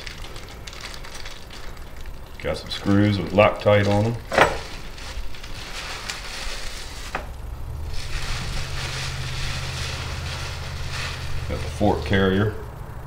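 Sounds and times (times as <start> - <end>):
plastic wrap crinkling: 0.0 - 12.7
low steady hum: 0.0 - 13.0.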